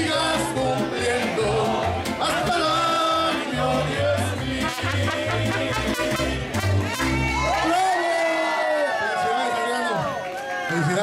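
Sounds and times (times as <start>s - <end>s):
man singing: 0.0s - 6.9s
mariachi band playing: 0.0s - 11.0s.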